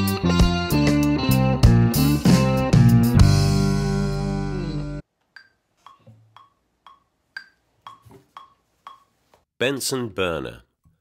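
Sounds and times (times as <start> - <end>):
metronome ticks: 5.3 - 9.1.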